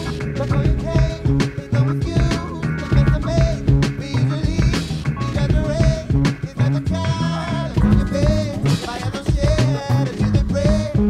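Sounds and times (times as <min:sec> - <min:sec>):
deep bass notes: 0:00.0 - 0:11.0
drum machine beat: 0:00.0 - 0:11.0
sliding lead melody: 0:00.0 - 0:11.0.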